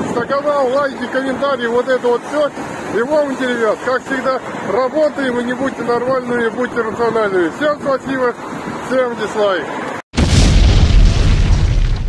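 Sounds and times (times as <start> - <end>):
explosion blast with deep rumble: 10.2 - 12.0.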